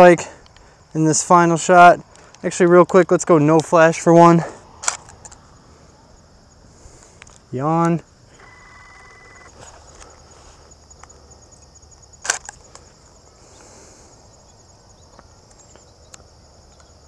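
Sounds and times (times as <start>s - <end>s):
insects chirping: 0.0s - 17.0s.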